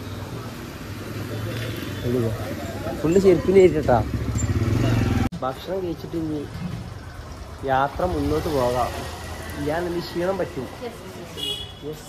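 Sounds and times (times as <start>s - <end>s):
street hum: 0.0s - 12.0s.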